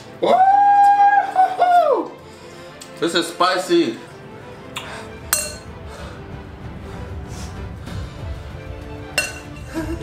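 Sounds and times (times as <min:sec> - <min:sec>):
background music: 0:00.0 - 0:10.0
fork clinking against glass bowl: 0:05.3 - 0:05.7, 0:09.2 - 0:09.6.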